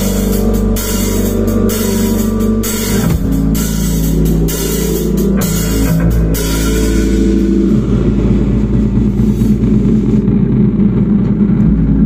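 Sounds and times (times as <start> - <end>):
drum kit with crashing cymbals: 0.0 - 10.2
electric bass: 0.0 - 12.0.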